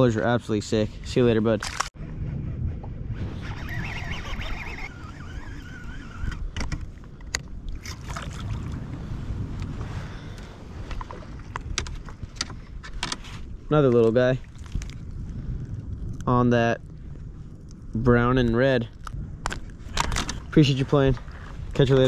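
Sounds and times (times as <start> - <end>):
wind rumble on microphone: 0.0 - 22.0
water against kayak hull: 3.6 - 15.2.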